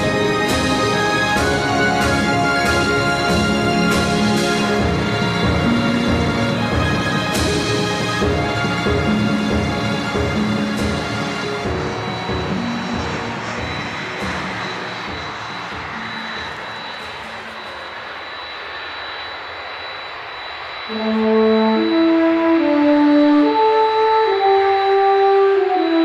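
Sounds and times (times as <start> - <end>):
background music with horn notes: 0.0 - 14.7, 20.9 - 26.0
jet engines whining: 0.0 - 26.0.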